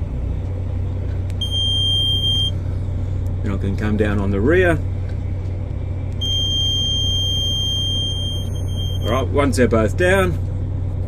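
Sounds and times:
crane engine idling: 0.0 - 11.0
warning buzzer beep: 1.4 - 2.5, 6.2 - 9.1.

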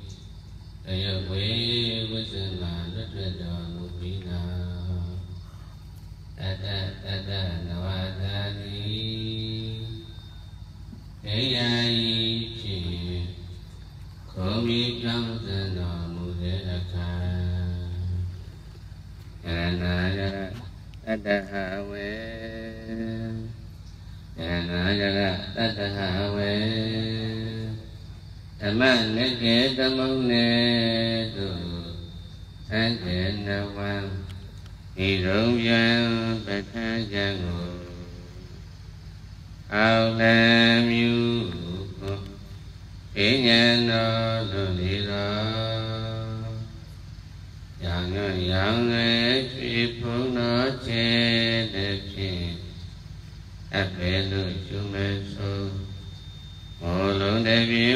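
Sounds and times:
man chanting into a microphone: 0.0 - 5.4, 6.4 - 10.3, 11.2 - 13.7, 14.3 - 18.4, 19.4 - 23.7, 24.4 - 28.0, 28.6 - 38.6, 39.7 - 42.5, 43.1 - 46.9, 47.8 - 53.0, 53.7 - 56.1, 56.8 - 57.9
steady low hum: 0.0 - 57.9.

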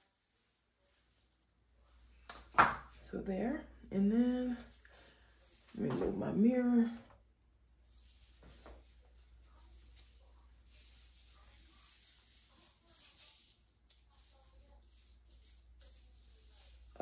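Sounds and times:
faint rustling of hair: 0.0 - 17.0.

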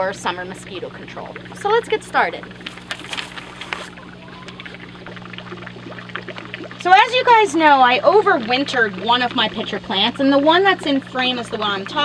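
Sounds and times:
constant low hum: 0.0 - 12.0
water trickling into a pond: 0.0 - 12.0.

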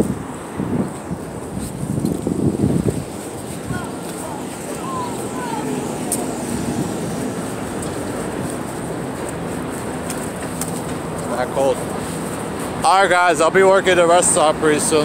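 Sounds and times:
wind on microphone: 0.0 - 12.8
passing traffic: 0.0 - 15.0.

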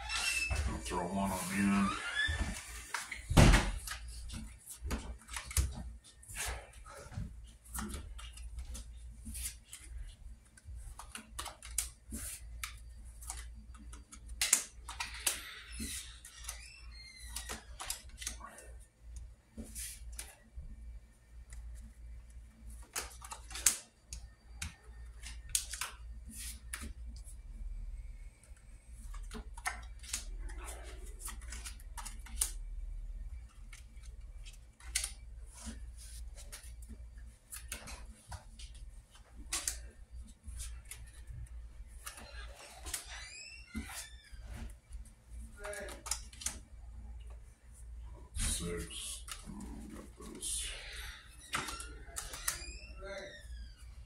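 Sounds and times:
deck being handled: 19.6 - 20.4, 33.5 - 43.2.

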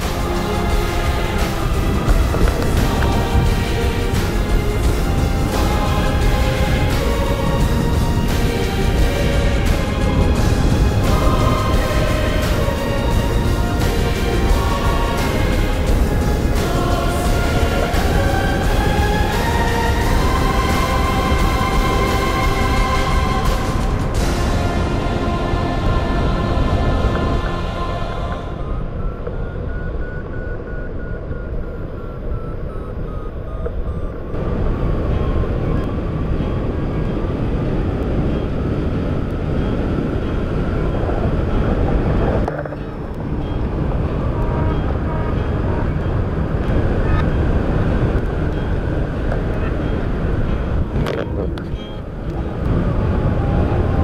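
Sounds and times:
wind rushing over microphone: 0.0 - 54.0
variometer beeping: 28.3 - 52.8.

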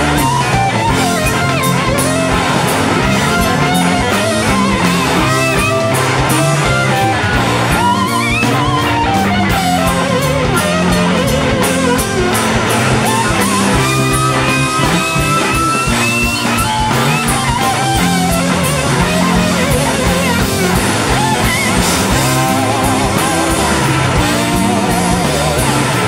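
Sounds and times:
bass and drums: 0.0 - 26.0
lead guitar bending notes: 0.0 - 26.0.

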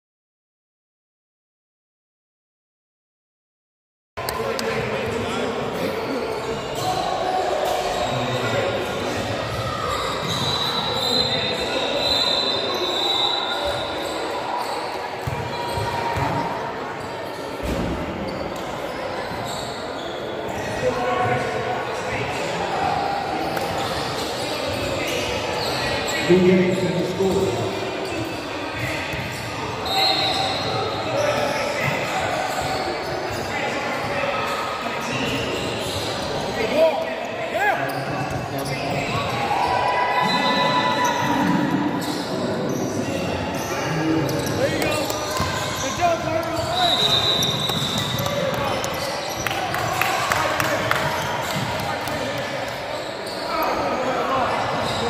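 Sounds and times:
indistinct voices in gym: 4.2 - 55.0.

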